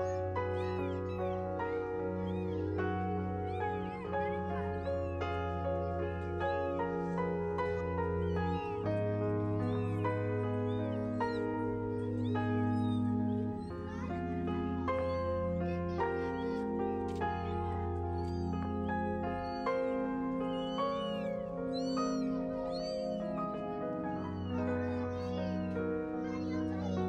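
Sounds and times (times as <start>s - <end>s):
kittens mewing: 0.0s - 27.0s
soft background music: 0.0s - 27.0s.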